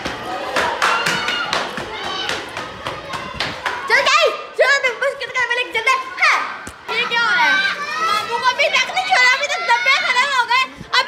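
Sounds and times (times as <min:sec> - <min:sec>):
children calling out: 0:00.2 - 0:11.0.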